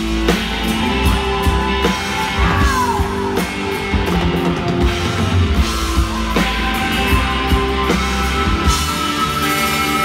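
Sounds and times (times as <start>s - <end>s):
bass: 0.0s - 10.0s
drum kit: 0.0s - 10.0s
electric guitars: 0.0s - 10.0s
keyboards: 0.0s - 10.0s.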